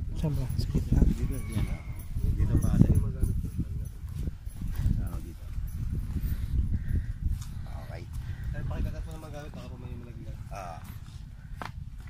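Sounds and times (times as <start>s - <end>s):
low wind rumble: 0.0s - 12.0s
horse sounds: 0.3s - 6.5s.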